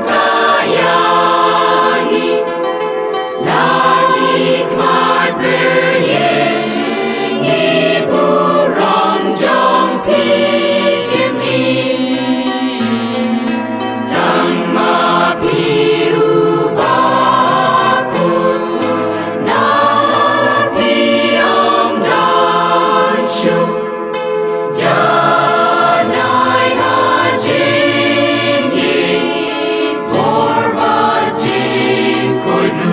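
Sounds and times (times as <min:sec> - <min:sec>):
choir singing long notes: 0:00.0 - 0:32.9.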